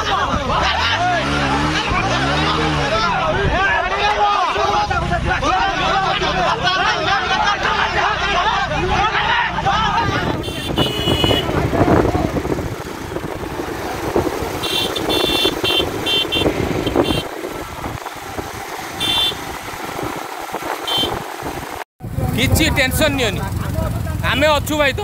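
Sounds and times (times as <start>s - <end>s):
crowd voices: 0.0s - 19.0s
motorcycle engine running: 9.7s - 25.0s
short horn toots: 10.4s - 11.7s, 14.6s - 17.4s, 19.0s - 19.5s, 20.8s - 21.2s.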